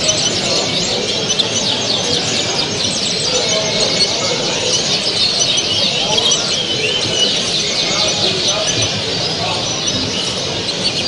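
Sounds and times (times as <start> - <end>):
songbirds chirping and trilling: 0.0 - 11.0.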